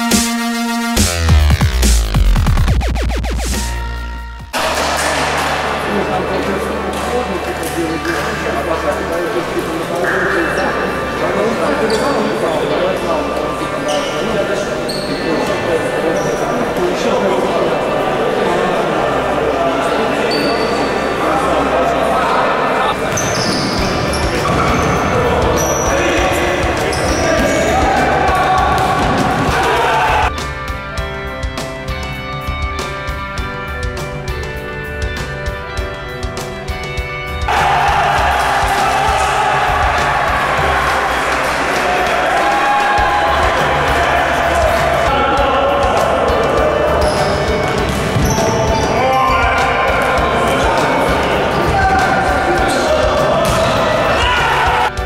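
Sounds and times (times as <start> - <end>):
indistinct voices: 4.6 - 30.3, 37.5 - 55.0
shoe squeaks on wooden court: 10.0 - 10.8, 11.8 - 12.4, 13.8 - 16.5, 23.1 - 26.0, 26.8 - 27.8, 47.0 - 49.4.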